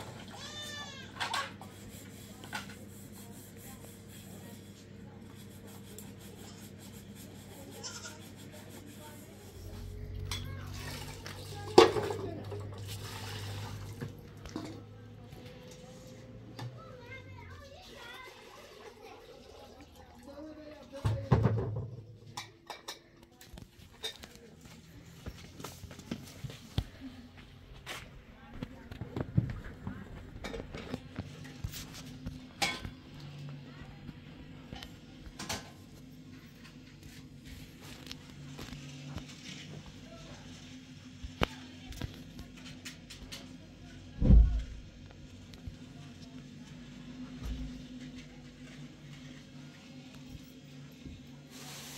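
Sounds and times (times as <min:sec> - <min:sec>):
water pouring and splashing: 0:10.7 - 0:14.8, 0:17.7 - 0:21.0, 0:51.5 - 0:51.9.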